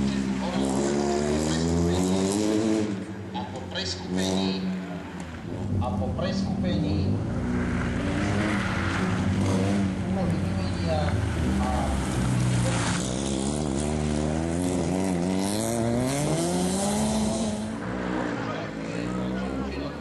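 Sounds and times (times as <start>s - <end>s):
rally car engine revving: 0.0s - 20.0s.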